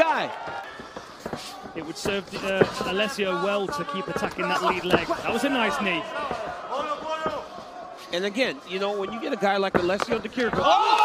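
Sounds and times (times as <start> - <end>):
man commentating: 1.7 - 7.5.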